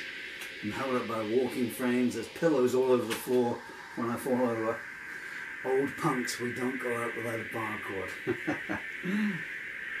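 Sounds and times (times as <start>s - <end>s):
man humming: 8.2s - 9.4s
man's breathy laugh-like sounds: 8.2s - 9.4s.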